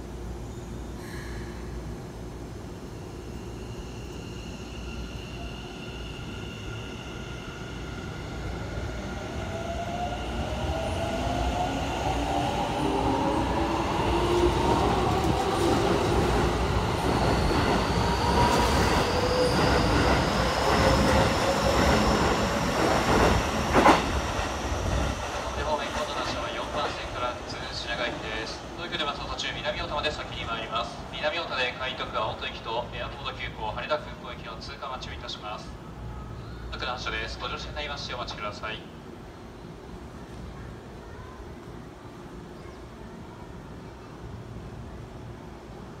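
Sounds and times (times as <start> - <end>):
train wheels rumbling and clattering: 10.7 - 27.5.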